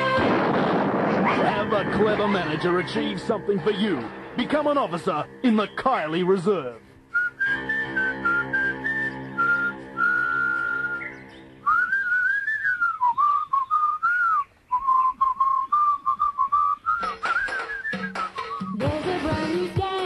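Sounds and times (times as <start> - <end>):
backing music: 0.0 - 11.9, 16.9 - 20.0
person whistling a tune: 7.1 - 18.8
ticking beat: 17.0 - 20.0.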